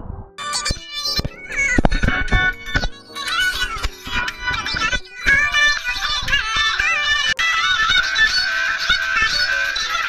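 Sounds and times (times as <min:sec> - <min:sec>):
woman singing: 0:01.5 - 0:10.0.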